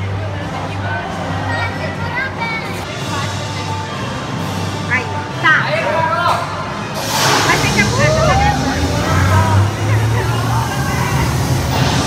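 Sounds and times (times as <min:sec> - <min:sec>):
pneumatic air hissing: 0:07.0 - 0:08.8
riders' voices: 0:07.2 - 0:12.0.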